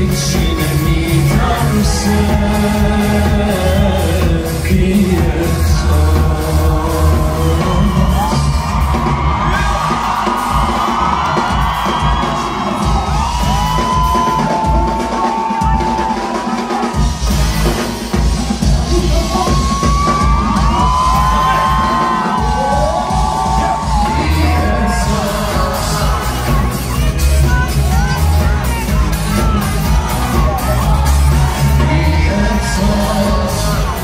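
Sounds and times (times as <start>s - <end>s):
crowd whooping and yelling: 0.0s - 34.0s
live rock band playing: 0.0s - 34.0s.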